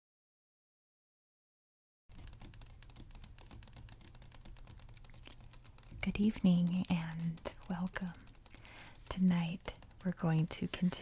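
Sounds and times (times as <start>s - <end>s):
low steady hum: 2.1s - 11.0s
fingernails tapping on book page: 2.2s - 11.0s.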